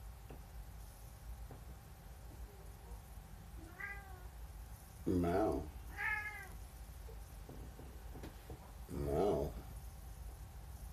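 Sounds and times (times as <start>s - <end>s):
cat meowing: 3.6s - 4.3s, 5.9s - 6.6s.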